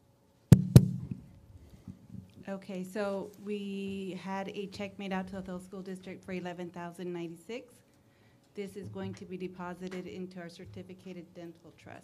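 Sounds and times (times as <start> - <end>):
sharp knocks on microphone: 0.5 - 1.2.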